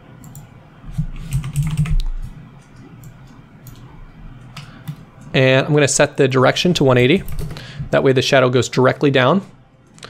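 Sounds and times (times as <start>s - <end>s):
keyboard keys clicking: 1.2s - 2.1s.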